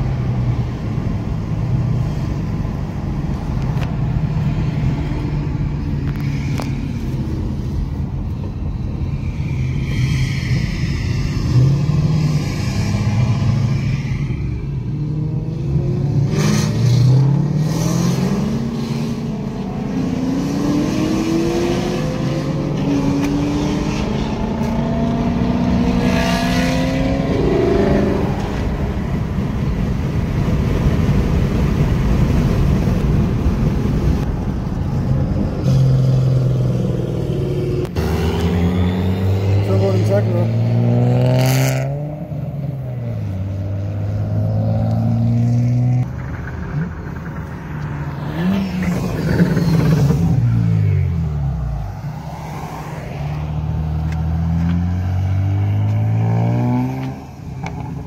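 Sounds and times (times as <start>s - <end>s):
engine droning and revving: 0.0s - 30.8s, 34.3s - 58.0s.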